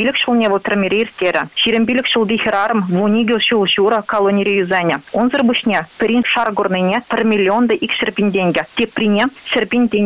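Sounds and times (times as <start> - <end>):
woman speaking over telephone: 0.0 - 10.0.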